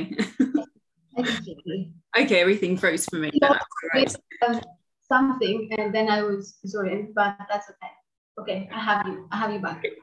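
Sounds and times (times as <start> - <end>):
person's voice over video call: 1.2 - 10.0.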